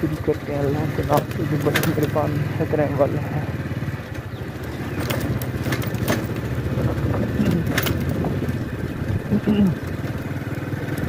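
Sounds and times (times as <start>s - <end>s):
sharp clicks and rattles: 0.0s - 11.0s
small motorcycle engine running: 0.0s - 11.0s.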